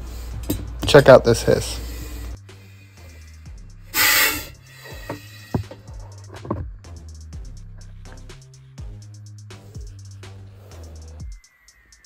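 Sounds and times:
background music: 0.0 - 12.0
snake hissing: 1.8 - 6.2, 8.3 - 11.2.

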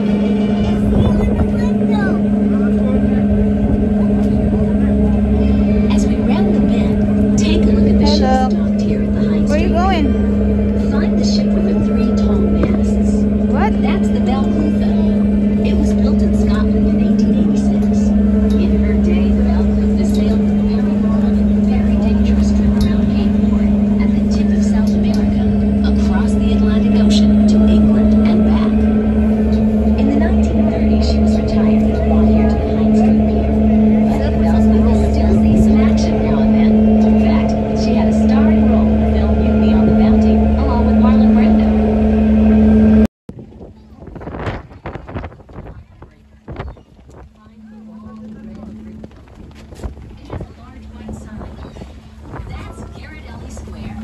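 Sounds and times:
boat engines droning: 0.0 - 54.0
indistinct voices: 0.0 - 54.0.

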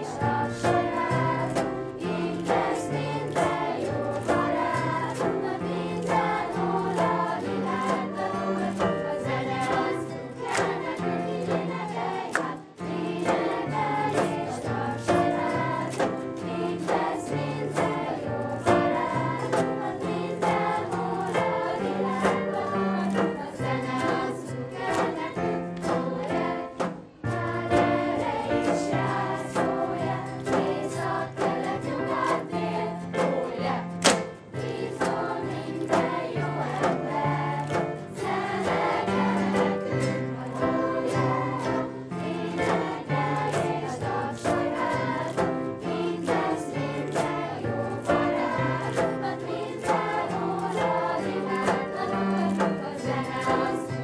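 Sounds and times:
acoustic guitar: 0.0 - 54.0
children's choir singing: 0.0 - 54.0.

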